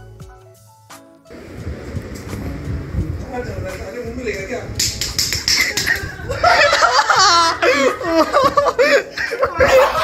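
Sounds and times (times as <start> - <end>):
young men laughing loudly: 5.5 - 10.0.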